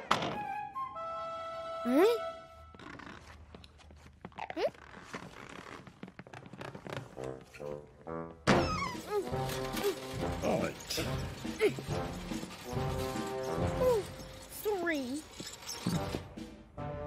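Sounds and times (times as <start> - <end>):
short rising squeak: 12.4 - 16.4.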